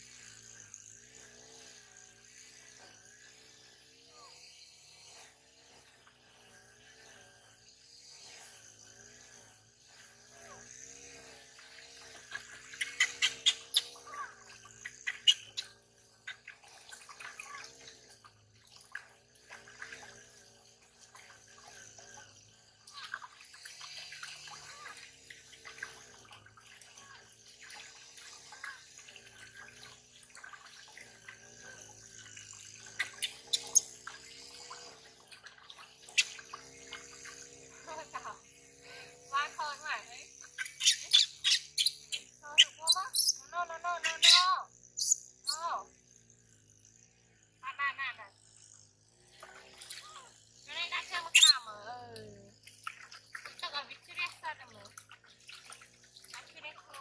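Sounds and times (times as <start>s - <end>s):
water splashing in metal basin: 11.7s - 37.9s, 52.6s - 57.0s
monkey squealing: 12.4s - 17.8s, 33.0s - 33.9s, 36.1s - 38.4s, 39.0s - 45.8s, 50.0s - 51.8s.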